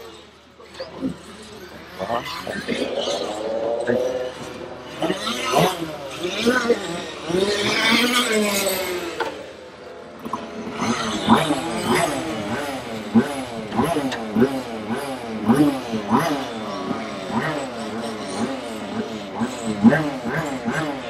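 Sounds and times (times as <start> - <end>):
people talking: 2.0 - 4.1.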